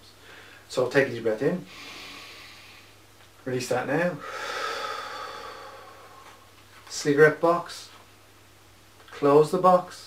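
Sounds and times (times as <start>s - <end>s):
man exhaling deeply: 4.2s - 6.5s.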